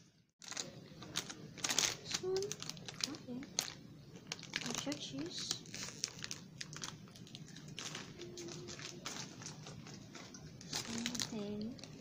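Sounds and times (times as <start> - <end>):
plastic chip bags crinkling: 0.4 - 12.0.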